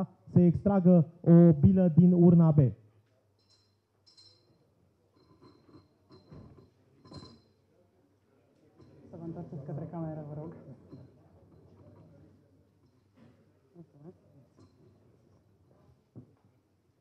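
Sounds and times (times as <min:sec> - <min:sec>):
capsules clinking on glass bowl: 0:03.4 - 0:07.6.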